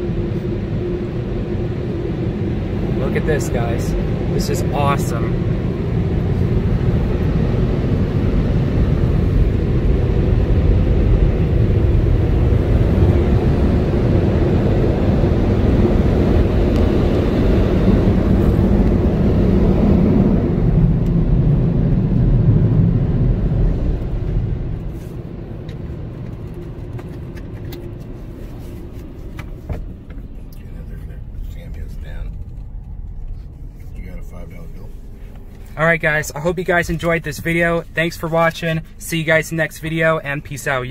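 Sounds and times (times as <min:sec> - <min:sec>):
car wash blowers blasting air: 0:00.0 - 0:26.4, 0:27.0 - 0:40.9.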